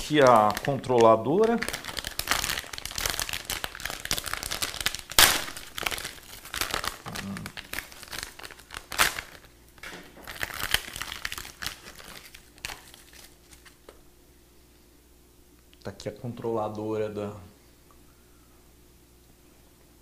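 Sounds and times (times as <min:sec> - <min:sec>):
plastic bag crinkling: 0:00.0 - 0:13.9
sharp plastic crackles: 0:00.0 - 0:14.0.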